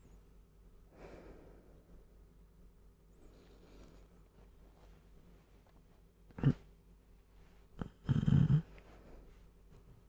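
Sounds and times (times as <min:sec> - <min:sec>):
man snoring: 0:07.8 - 0:08.6.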